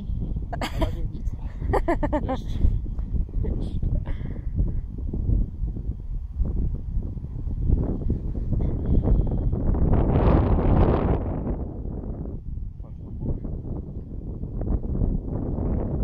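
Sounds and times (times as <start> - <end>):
rushing gust of wind: 0.0 - 16.0
wind buffeting microphone: 0.0 - 16.0.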